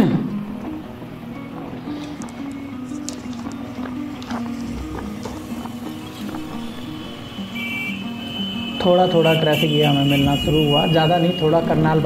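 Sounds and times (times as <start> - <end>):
low background melody: 0.0 - 9.5.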